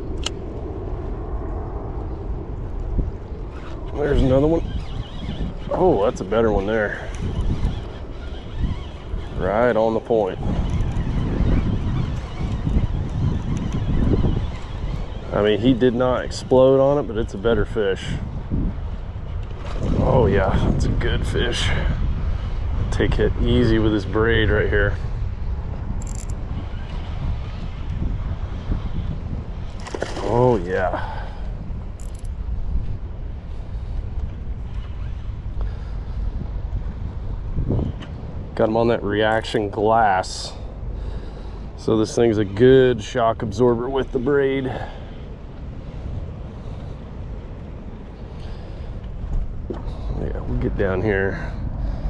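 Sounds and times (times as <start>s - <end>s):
wind buffeting microphone: 0.0s - 52.0s
fishing reel mechanical sounds: 3.6s - 15.6s, 26.0s - 27.0s, 32.0s - 32.3s.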